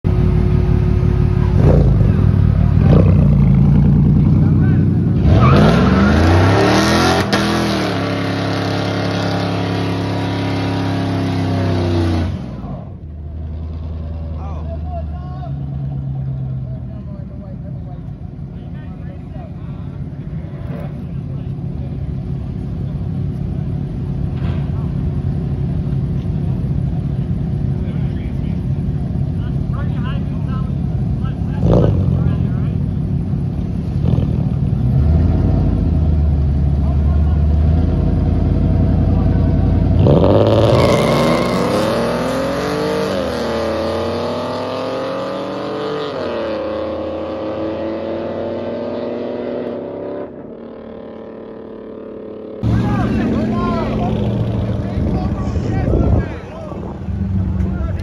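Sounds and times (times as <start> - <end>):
car engine revving hard: 5.0 - 12.5, 37.4 - 50.4
tyres spinning in burnout: 40.0 - 43.6.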